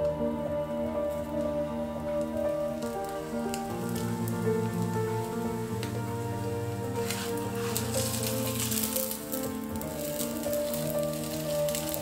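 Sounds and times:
background music sustained notes: 0.0s - 12.0s
sandwich sizzling in a pan: 2.7s - 12.0s.

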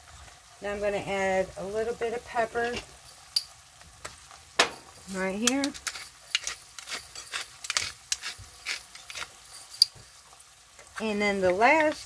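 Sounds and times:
pepper grinder crackling: 3.3s - 10.1s, 10.8s - 12.0s.

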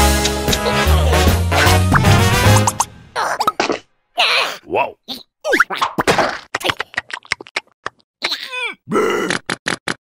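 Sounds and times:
cartoon grunt: 3.2s - 5.7s, 8.2s - 9.5s.

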